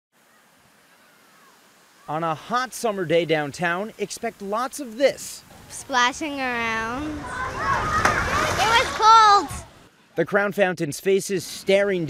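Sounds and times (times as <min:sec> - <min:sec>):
water sheeting down fountain: 0:02.7 - 0:09.7.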